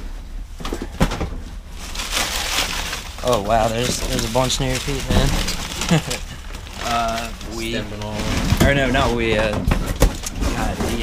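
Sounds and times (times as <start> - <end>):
paper and cardboard rustling: 1.8 - 11.0.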